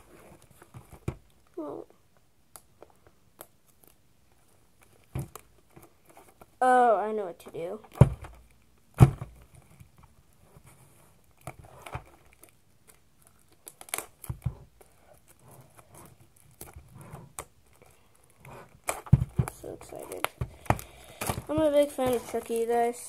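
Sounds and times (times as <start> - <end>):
plastic packaging crinkling and tearing: 11.2 - 23.0.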